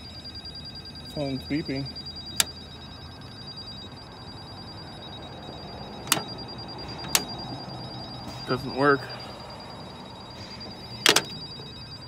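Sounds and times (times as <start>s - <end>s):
sharp clicks of metal keypad: 6.0s - 6.3s, 7.0s - 7.3s, 11.0s - 11.4s.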